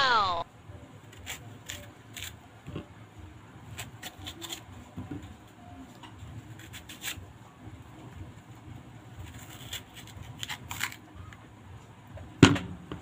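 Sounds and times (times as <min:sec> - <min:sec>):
knife cutting mango: 0:01.1 - 0:02.4, 0:03.7 - 0:04.8, 0:06.4 - 0:07.2, 0:09.2 - 0:11.0.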